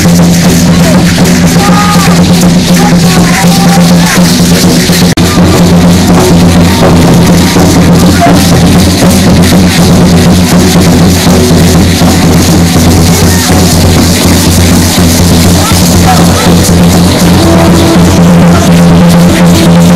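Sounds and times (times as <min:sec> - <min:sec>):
loud drumming: 0:00.0 - 0:19.9
rattling percussion: 0:00.0 - 0:19.9
steady low drone: 0:11.0 - 0:19.9.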